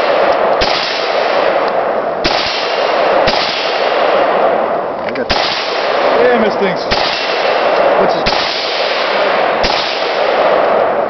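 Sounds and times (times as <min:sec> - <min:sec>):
rifle single shots with echo: 0:00.0 - 0:11.0.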